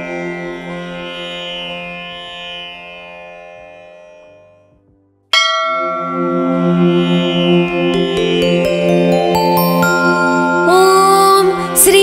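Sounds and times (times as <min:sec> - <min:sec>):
bright bell strike: 0:05.3 - 0:11.8
devotional music with drone: 0:05.4 - 0:12.0.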